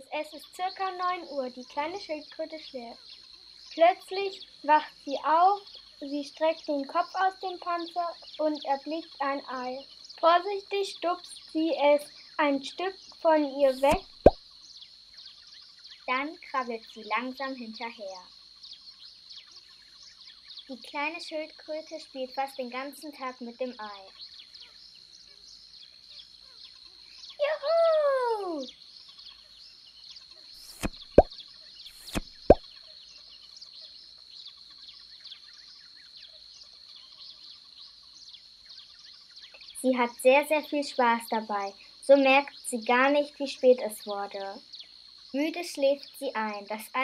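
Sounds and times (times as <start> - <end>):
birds chirping: 9.3 - 16.2, 23.3 - 40.2
cartoon plop sound effects: 13.7 - 14.4, 30.6 - 31.3, 32.0 - 32.6.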